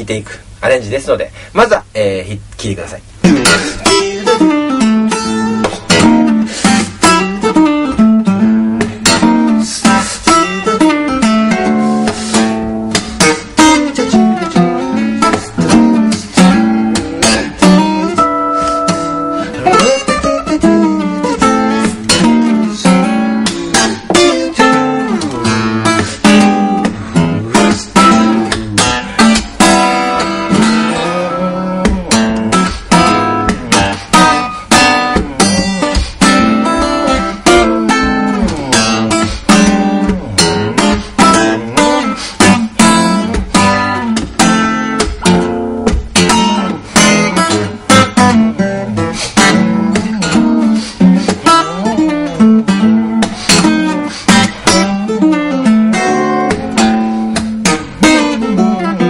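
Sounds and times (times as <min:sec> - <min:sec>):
fingerstyle acoustic guitar: 0:03.2 - 0:59.0.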